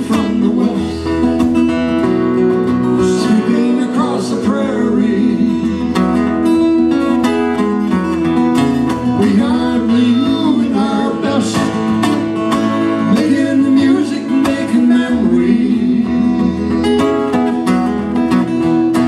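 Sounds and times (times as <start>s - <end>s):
acoustic guitars strumming: 0.0s - 19.0s.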